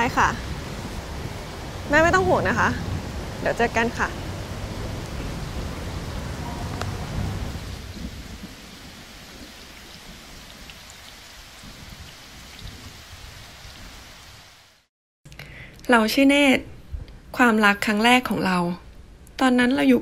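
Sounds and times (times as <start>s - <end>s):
low rumble: 0.0s - 9.3s
rain splashing on wet surface: 0.0s - 14.9s.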